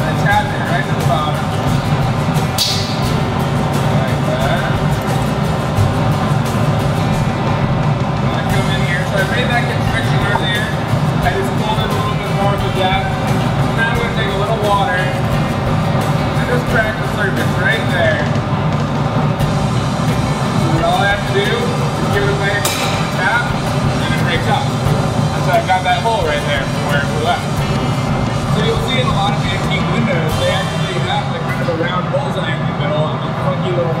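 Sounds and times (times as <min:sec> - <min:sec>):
background music: 0:00.0 - 0:34.0
gas furnace roaring: 0:00.0 - 0:34.0.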